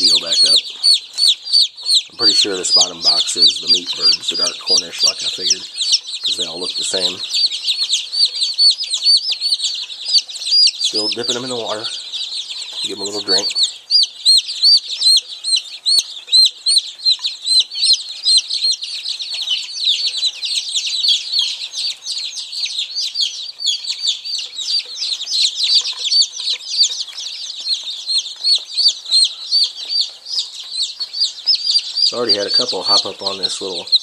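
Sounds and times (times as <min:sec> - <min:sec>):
chicks peeping: 0:00.0 - 0:34.0.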